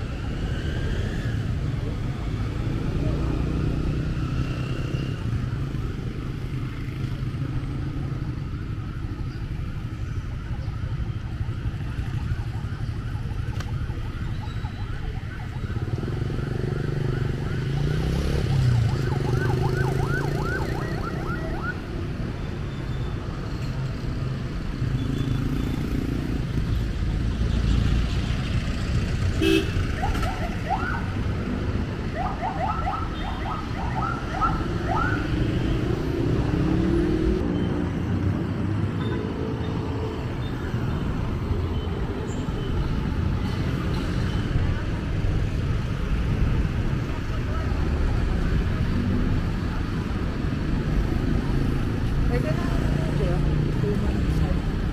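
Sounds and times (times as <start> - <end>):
street traffic: 0.0 - 54.9.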